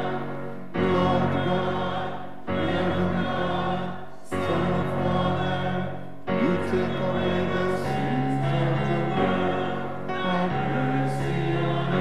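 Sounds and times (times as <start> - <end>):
church choir singing: 0.0 - 12.0.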